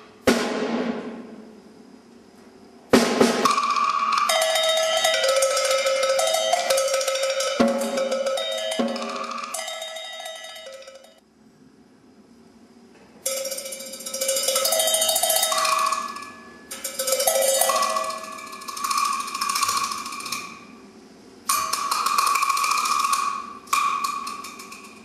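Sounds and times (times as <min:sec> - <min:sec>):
rapid strokes on metal percussion: 0:03.4 - 0:11.2, 0:13.2 - 0:20.8, 0:21.4 - 0:25.0.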